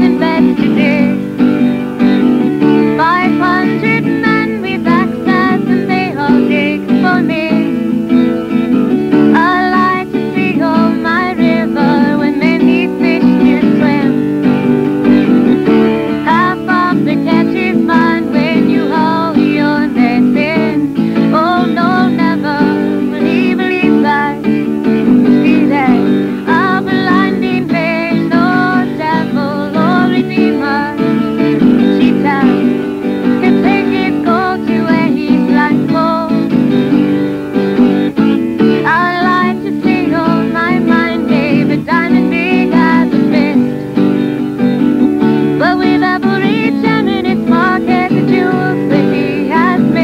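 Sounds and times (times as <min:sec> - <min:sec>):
woman singing slow melody: 0:00.0 - 0:44.2, 0:45.2 - 0:50.0
acoustic guitar strumming: 0:00.0 - 0:50.0.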